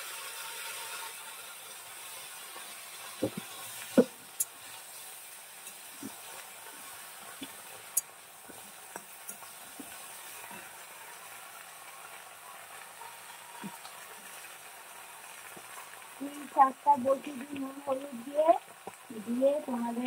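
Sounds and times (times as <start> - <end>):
food sizzling in hot oil: 0.0 - 20.0.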